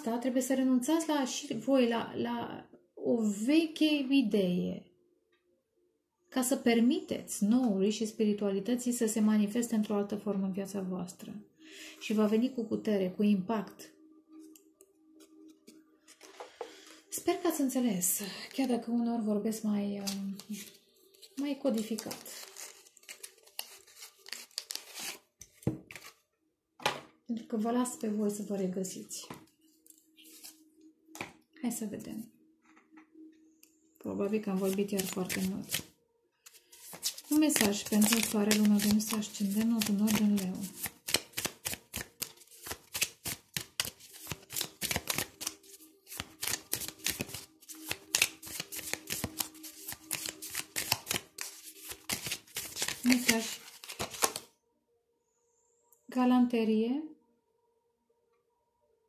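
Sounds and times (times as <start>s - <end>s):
cards being shuffled: 20.0s - 26.2s, 30.2s - 30.6s, 34.5s - 54.5s.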